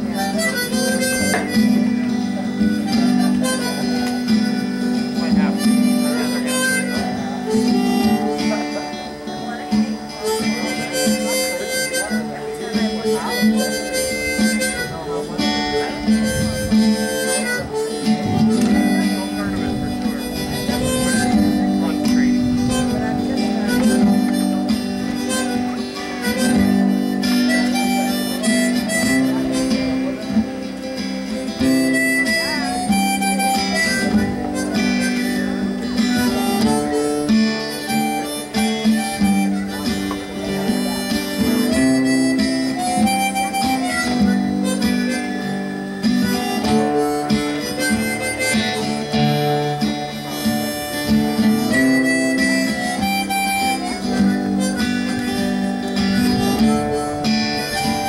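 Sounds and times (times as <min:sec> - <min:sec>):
harmonica: 0:00.0 - 0:58.0
strummed acoustic guitar: 0:00.0 - 0:58.0.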